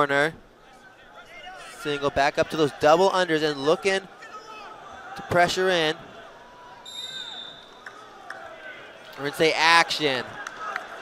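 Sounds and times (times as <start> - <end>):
arena crowd noise: 0.0 - 11.0
referee's whistle blast: 6.8 - 7.8.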